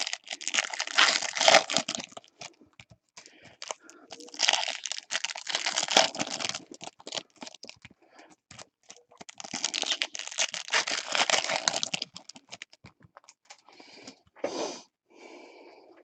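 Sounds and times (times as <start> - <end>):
wrapper crinkling and tearing: 0.0 - 13.6.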